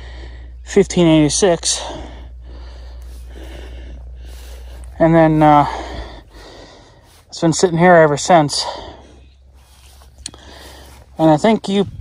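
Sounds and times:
man breathing close to microphone: 0:00.0 - 0:00.7, 0:01.6 - 0:12.0
steady low rumble: 0:00.0 - 0:12.0.

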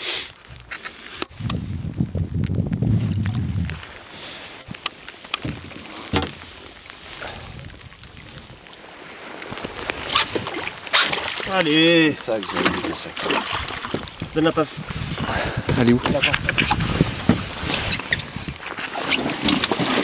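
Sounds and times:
knocks on wooden rowboat: 0:05.4 - 0:06.4
fish splashing at surface: 0:09.4 - 0:11.6.

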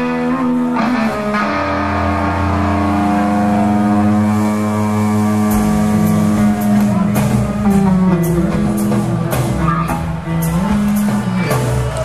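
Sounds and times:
electric guitar chords: 0:00.0 - 0:12.0
low bass note: 0:01.3 - 0:09.3
drum hits: 0:02.0 - 0:12.0.

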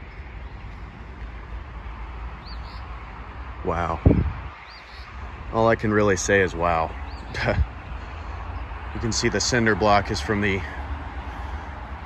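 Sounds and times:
busy road traffic rumble: 0:00.0 - 0:12.0.

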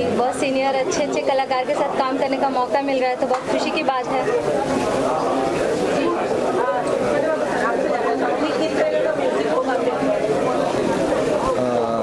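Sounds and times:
chatter of people: 0:00.0 - 0:12.0.

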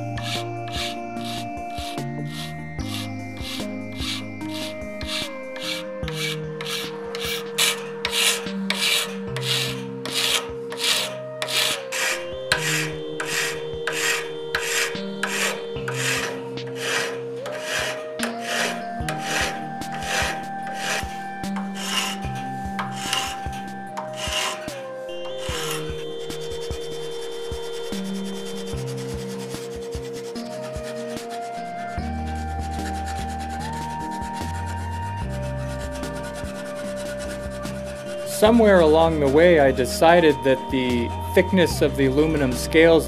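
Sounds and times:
hand file rasping on metal: 0:00.0 - 0:41.0
background music: 0:00.0 - 0:43.0.

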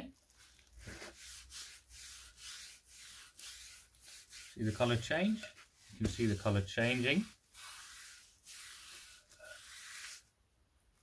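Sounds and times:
cloth rubbing on wooden club: 0:00.2 - 0:10.4.

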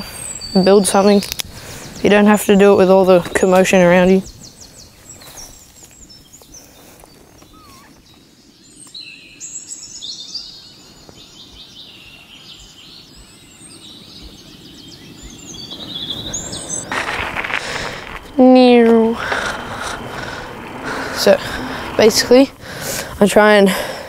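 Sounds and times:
birds chirping: 0:00.0 - 0:24.0
outdoor background hiss: 0:00.0 - 0:24.0
rush of noise: 0:16.1 - 0:23.3.

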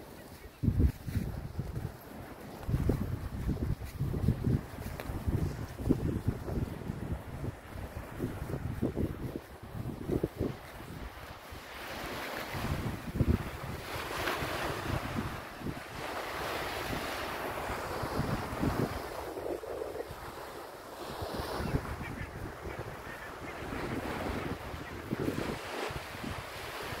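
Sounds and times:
wind buffeting microphone: 0:00.0 - 0:27.0
small waves breaking: 0:10.4 - 0:21.8.

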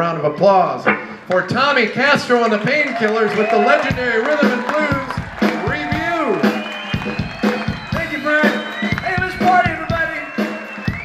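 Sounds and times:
rhythm and blues band playing: 0:00.9 - 0:11.0
drum hits: 0:03.9 - 0:11.0.

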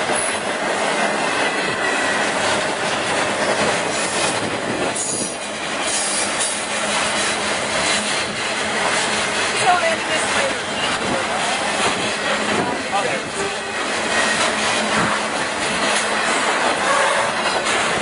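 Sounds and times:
freight train wheels rumbling: 0:00.0 - 0:18.0.

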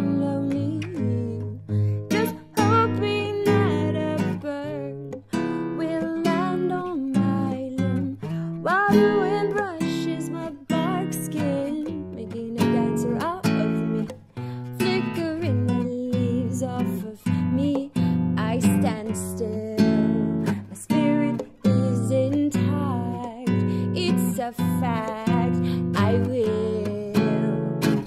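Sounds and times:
classical guitar strummed: 0:00.0 - 0:28.0.

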